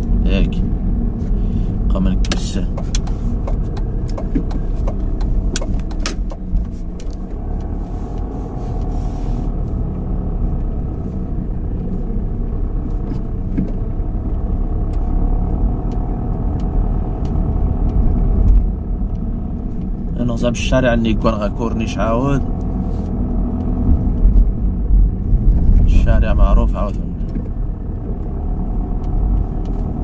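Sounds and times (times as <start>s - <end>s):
car engine and road rumble: 0.0s - 30.0s
sharp clicks: 2.2s - 6.5s.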